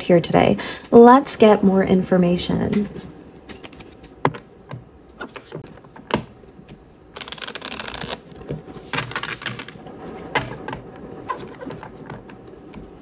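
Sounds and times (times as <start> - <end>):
cards fluttering: 7.1 - 9.9.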